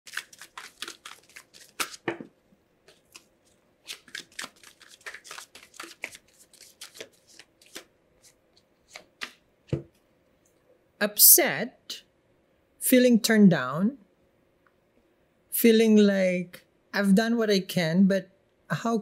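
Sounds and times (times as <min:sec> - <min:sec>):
cards being shuffled: 0:00.1 - 0:02.3, 0:02.9 - 0:09.8.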